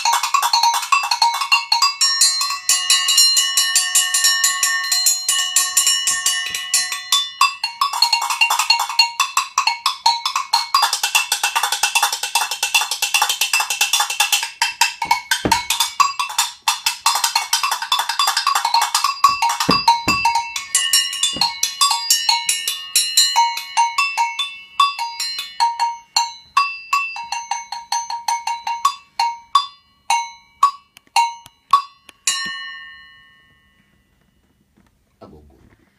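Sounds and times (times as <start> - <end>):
agogo bell struck with stick: 0.0 - 32.9.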